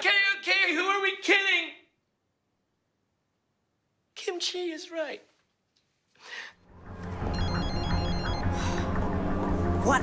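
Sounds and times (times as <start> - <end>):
phone ringtone beeps: 7.3 - 8.6.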